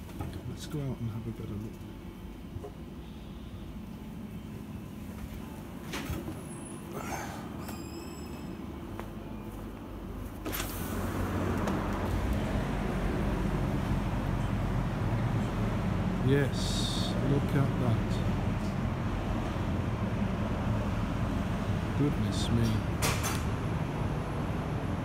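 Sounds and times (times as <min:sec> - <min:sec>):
low rumble of traffic: 0:00.0 - 0:25.0
glass door opening click: 0:23.0 - 0:23.5.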